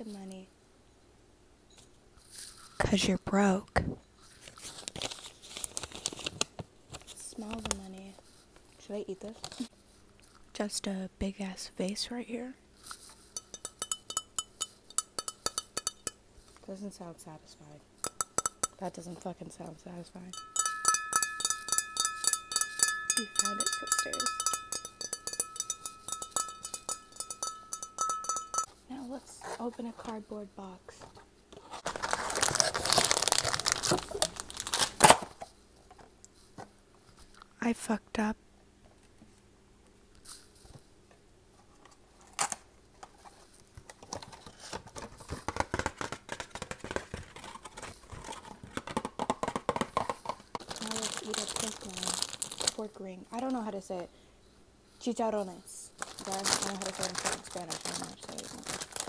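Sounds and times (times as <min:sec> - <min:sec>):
packaging crinkling: 0:04.5 - 0:07.8, 0:31.7 - 0:35.4, 0:50.6 - 0:52.9, 0:56.0 - 0:59.0
glass ringing: 0:13.4 - 0:16.2, 0:18.0 - 0:18.8, 0:20.3 - 0:28.7
cardboard tearing: 0:31.8 - 0:35.3.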